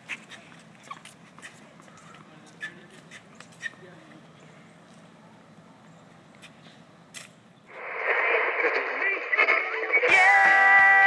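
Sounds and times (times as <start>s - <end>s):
radio static hiss: 7.7s - 11.0s.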